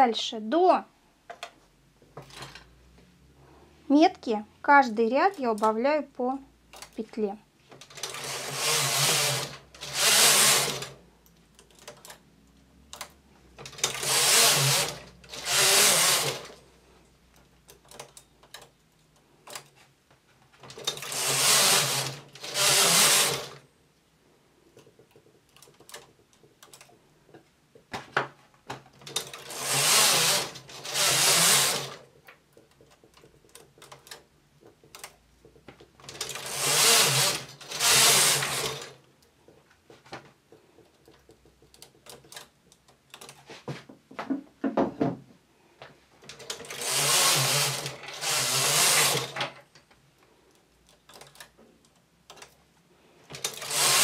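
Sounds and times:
knitting machine carriage sliding: 2.2s - 2.7s, 7.7s - 11.0s, 12.9s - 16.7s, 20.5s - 23.6s, 28.9s - 39.0s, 40.9s - 43.7s, 46.2s - 49.8s, 53.2s - 54.0s.

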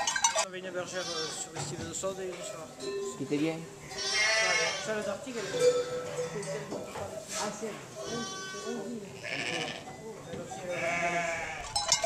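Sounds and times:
sheep bleating: 0.8s - 1.6s, 3.9s - 6.1s, 8.0s - 9.9s, 10.7s - 11.8s.

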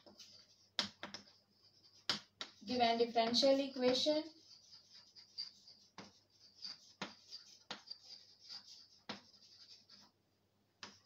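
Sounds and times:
chalk tapping on board: 0.0s - 10.1s, 10.8s - 11.0s
chalk scratching on blackboard: 0.0s - 10.2s, 10.8s - 11.0s.

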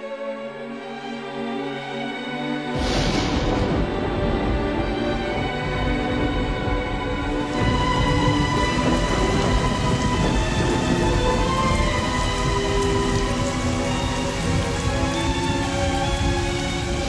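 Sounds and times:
dramatic music score: 0.0s - 17.0s
heavy rain: 0.4s - 17.0s
low rumble of thunder: 2.8s - 17.0s.

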